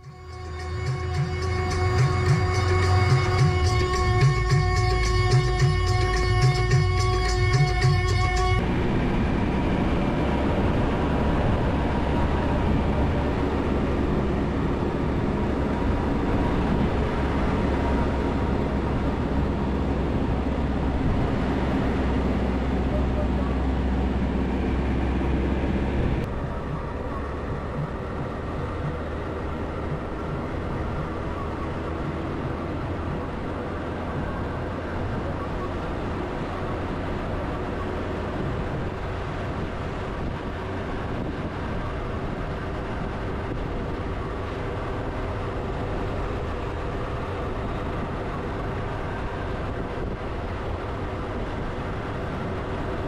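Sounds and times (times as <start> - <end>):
low wind rumble: 0.0 - 53.0
vehicle engine and road noise: 0.0 - 53.0.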